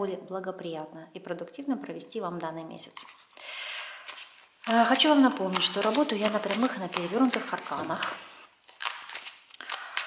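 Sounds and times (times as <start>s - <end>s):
cards being shuffled: 3.1s - 10.0s.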